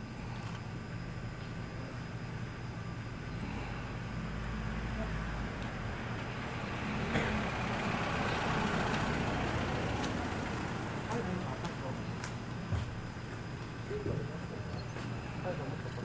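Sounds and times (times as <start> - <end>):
vehicle engine hum: 0.0 - 16.0.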